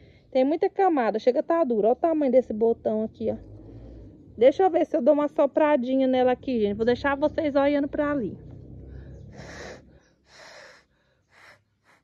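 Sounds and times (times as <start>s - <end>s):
person blowing puffs of breath: 8.9s - 12.0s.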